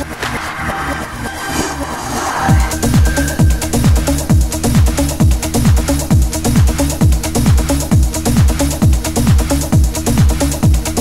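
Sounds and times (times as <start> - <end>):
white-noise sweep: 0.0 - 7.4
trance music: 0.0 - 11.0.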